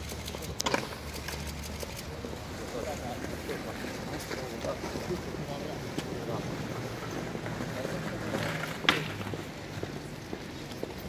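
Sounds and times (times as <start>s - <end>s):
footsteps on pavement: 0.0s - 11.0s.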